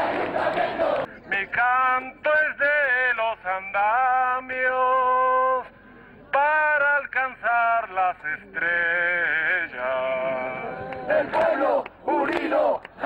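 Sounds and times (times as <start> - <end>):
man chanting through a megaphone: 6.4 - 12.8.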